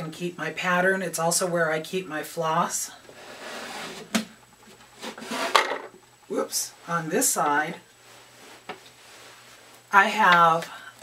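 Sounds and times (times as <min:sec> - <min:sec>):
wooden lid sliding: 0:03.2 - 0:04.2, 0:05.0 - 0:05.9.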